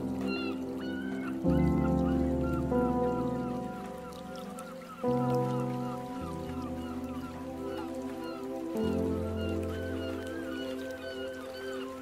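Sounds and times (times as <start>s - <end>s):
calm music of sustained chords: 0.0s - 12.0s
seagulls crying: 0.0s - 12.0s.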